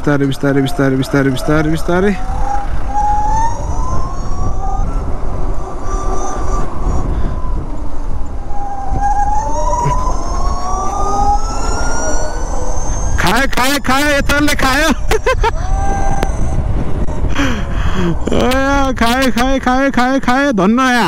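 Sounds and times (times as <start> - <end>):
wind rumble on microphone: 0.0 - 21.0
electric scooter motor whining: 0.1 - 18.9.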